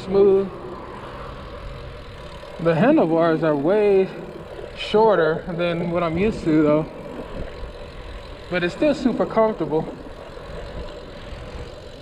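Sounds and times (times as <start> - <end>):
bike tyres on asphalt: 0.0 - 12.0.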